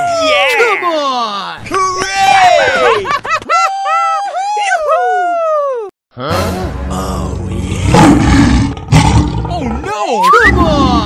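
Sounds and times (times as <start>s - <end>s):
lion roaring: 6.9s - 11.0s.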